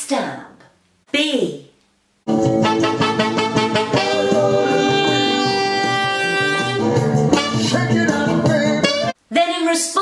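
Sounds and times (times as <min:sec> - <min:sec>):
soul backing track: 0:02.3 - 0:09.2
alto saxophone playing: 0:02.4 - 0:08.0, 0:08.7 - 0:09.2
person singing: 0:02.7 - 0:09.2.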